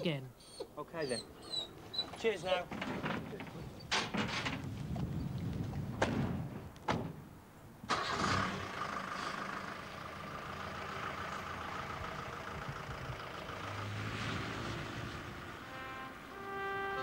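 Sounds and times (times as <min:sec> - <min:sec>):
van engine running: 0:07.9 - 0:15.9.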